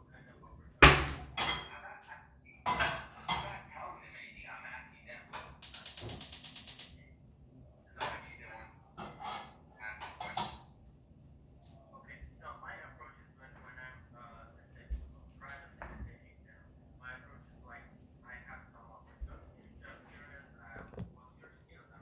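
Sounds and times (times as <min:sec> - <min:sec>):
cookware clanking and clattering: 0:00.8 - 0:01.8, 0:02.6 - 0:03.6, 0:09.0 - 0:10.7
rapid sharp clicks: 0:05.6 - 0:07.0.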